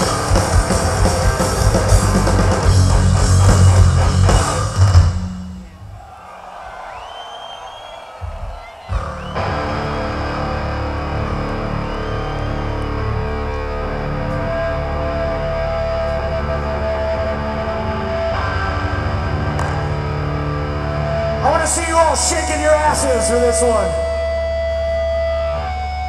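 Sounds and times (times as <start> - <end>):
electric guitars and bass droning chord: 0.0 - 5.6, 9.2 - 26.0.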